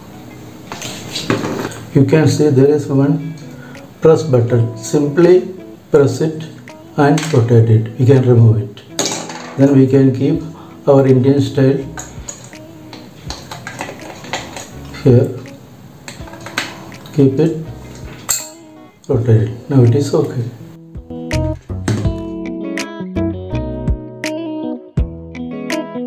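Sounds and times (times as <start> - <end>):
plastic adapter clicking and rattling: 12.0 - 14.8, 16.1 - 16.8.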